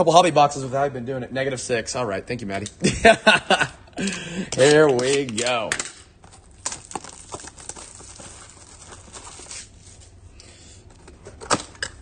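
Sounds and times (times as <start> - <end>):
cardboard rustling and crinkling: 6.2 - 10.1.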